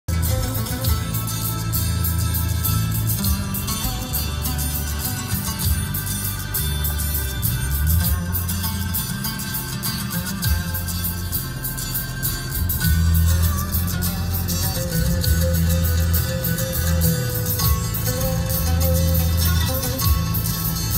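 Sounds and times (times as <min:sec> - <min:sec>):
pop music over car speakers: 0:00.1 - 0:20.9.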